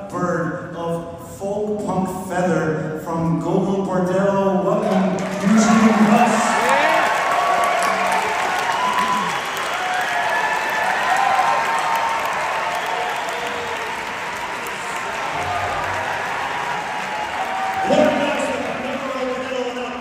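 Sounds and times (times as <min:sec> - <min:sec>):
audience applauding: 0:05.2 - 0:20.0
voices rising over clapping: 0:05.2 - 0:20.0.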